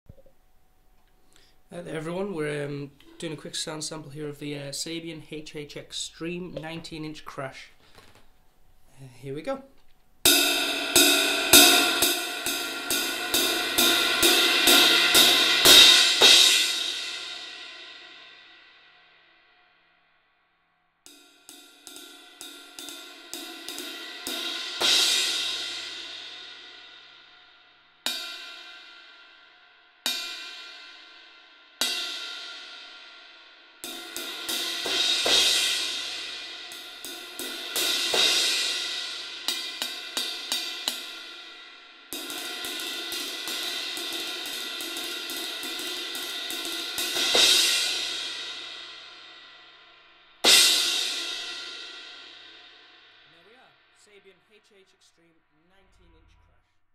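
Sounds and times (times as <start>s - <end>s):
cymbal roll: 10.2s - 19.6s, 21.1s - 53.9s
crash cymbal struck with drumsticks: 10.3s - 18.8s, 21.1s - 53.6s.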